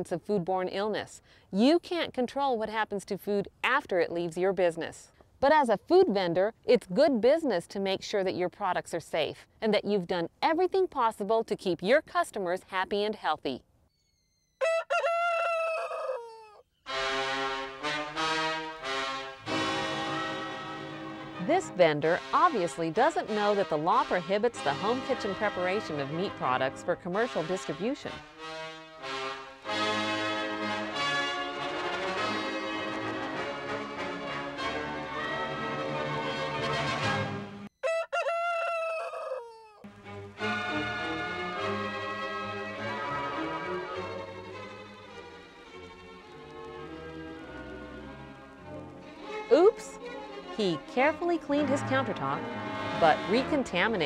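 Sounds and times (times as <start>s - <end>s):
rooster crowing: 14.6s - 16.6s, 37.8s - 39.8s
brass music: 16.9s - 37.7s, 39.9s - 54.0s.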